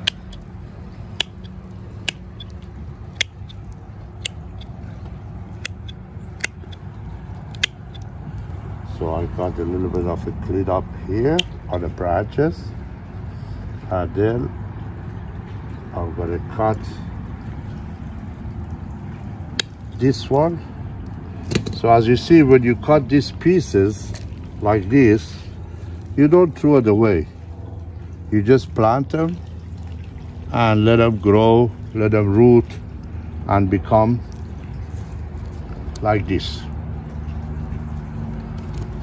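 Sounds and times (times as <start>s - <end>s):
pruners snipping roots: 0.0s - 0.5s, 1.1s - 4.8s, 5.6s - 8.1s, 11.2s - 11.8s
low background rumble: 0.0s - 39.0s
pruning shears snipping branch: 5.6s - 8.1s.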